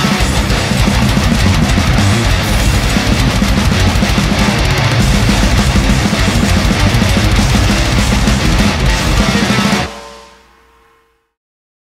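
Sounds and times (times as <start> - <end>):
metal band playing: 0.0 - 10.6
ringing guitar note: 0.0 - 11.2.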